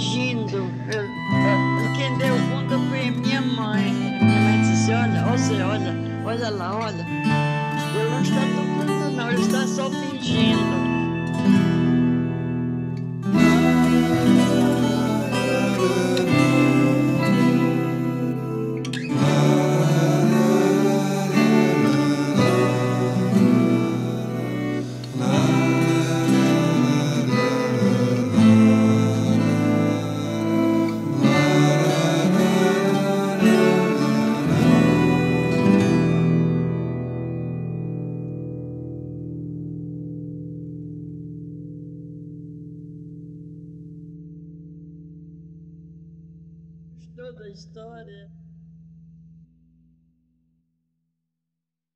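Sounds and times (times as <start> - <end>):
acoustic guitar playing: 0.0 - 50.4.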